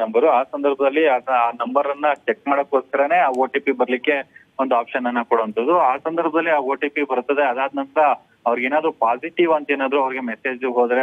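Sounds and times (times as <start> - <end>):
reporter talking: 0.0 - 11.0.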